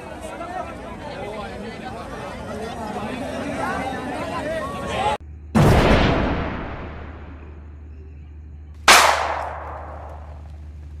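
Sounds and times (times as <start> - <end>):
firework bang echoing: 8.9 - 10.4.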